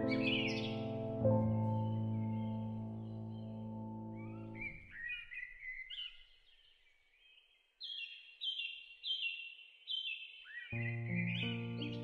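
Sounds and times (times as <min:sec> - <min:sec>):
songbirds calling: 0:00.0 - 0:12.0
sustained music chord: 0:10.8 - 0:12.0.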